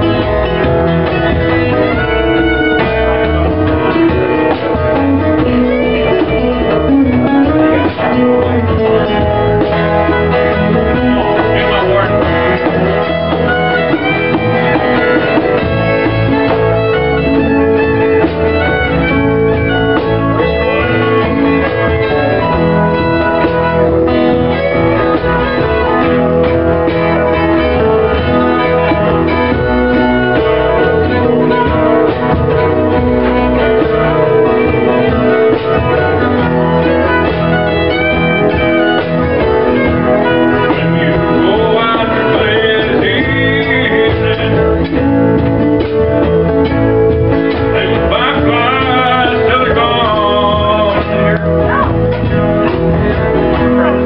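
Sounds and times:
acoustic guitars strumming: 0.0 - 54.0
fiddle: 0.0 - 54.0
man singing: 2.0 - 19.6, 40.0 - 45.5, 47.1 - 52.1.

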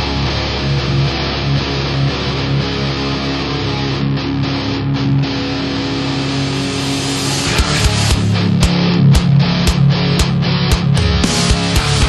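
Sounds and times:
distorted electric guitars: 0.0 - 12.0.

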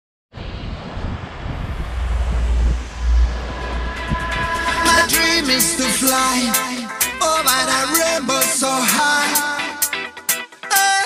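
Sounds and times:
wind buffeting microphone: 0.4 - 6.5.

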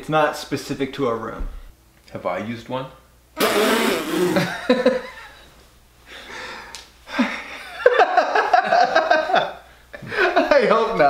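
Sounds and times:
man laughing: 4.0 - 5.4, 7.1 - 10.7.

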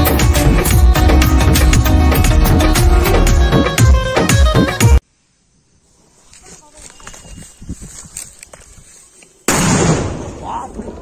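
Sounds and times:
firecracker blast: 9.5 - 11.0.

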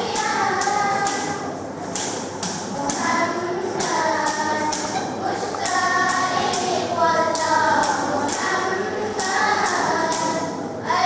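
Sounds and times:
girls singing together: 0.0 - 11.0.

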